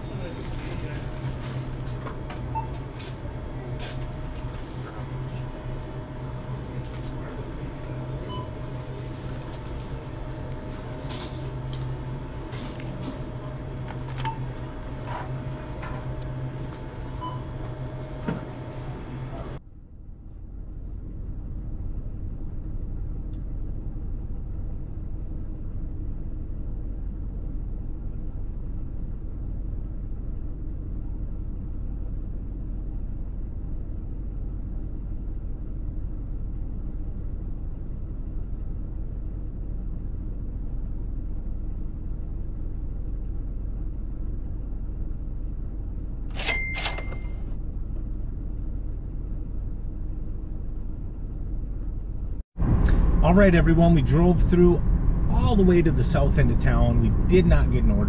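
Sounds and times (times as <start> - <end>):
brief high-pitched ring: 46.4 - 47.5.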